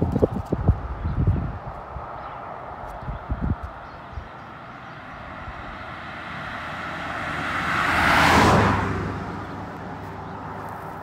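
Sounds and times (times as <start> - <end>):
vehicle passing at speed: 4.0 - 11.0.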